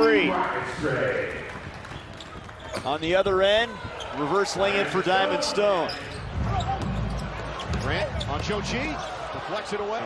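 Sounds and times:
arena crowd cheering and murmuring: 0.0 - 10.0.

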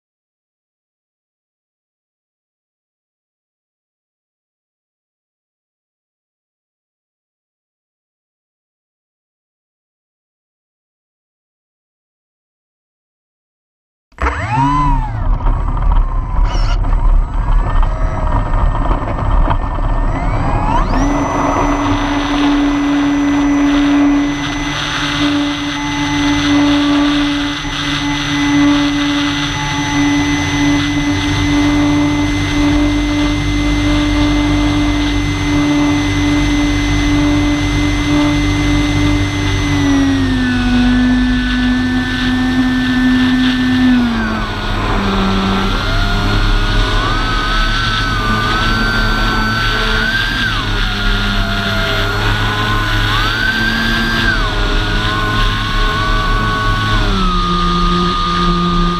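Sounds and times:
model airplane motor and propeller: 14.2 - 58.9
wind rushing over microphone: 14.9 - 27.7.

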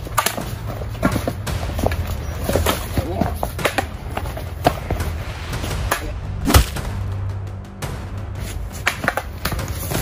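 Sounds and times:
wooden stick striking crack: 0.1 - 2.8, 5.7 - 7.0, 8.5 - 9.7.

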